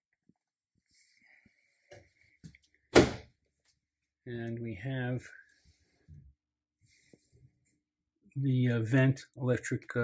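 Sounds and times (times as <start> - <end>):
wooden cabinet door shutting: 2.9 - 3.3.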